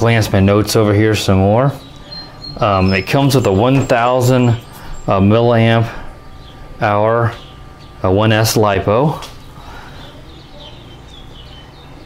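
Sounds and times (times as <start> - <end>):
faint bird chirping: 0.0 - 12.0
low steady hum: 0.0 - 12.0.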